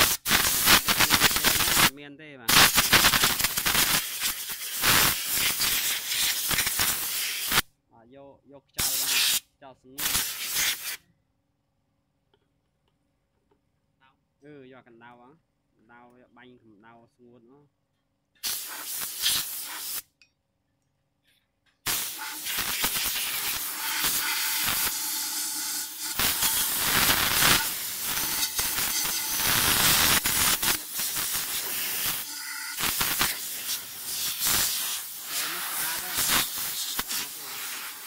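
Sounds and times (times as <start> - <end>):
spray gun hissing water: 2.7 - 7.6, 18.4 - 20.0, 21.9 - 38.0.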